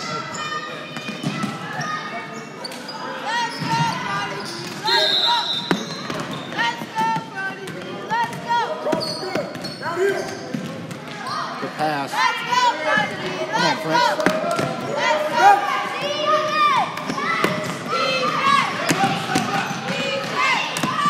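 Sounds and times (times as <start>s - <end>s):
sneakers squeaking: 0.0s - 11.6s, 16.3s - 21.0s.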